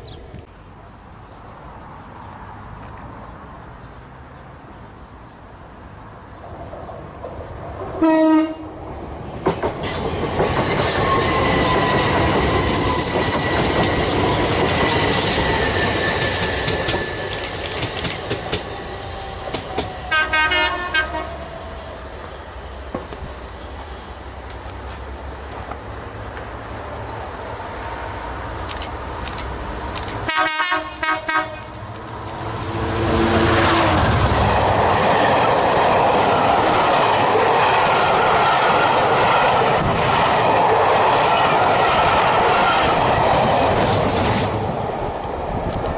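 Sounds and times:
locomotive passing at speed: 6.5s - 26.2s, 26.8s - 45.9s
locomotive horn short blasts: 8.0s - 8.7s, 20.1s - 21.3s, 30.3s - 31.8s
train wheels on rails: 8.8s - 45.9s
wheels clicking over rail joints: 9.3s - 18.8s.

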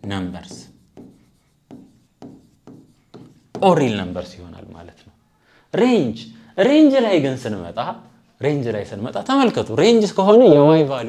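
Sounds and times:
stylus writing on screen: 0.2s - 4.3s.

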